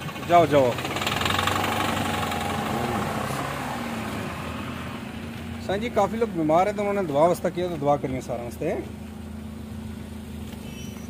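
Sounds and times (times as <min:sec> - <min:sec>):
truck engine idling: 0:00.0 - 0:11.0.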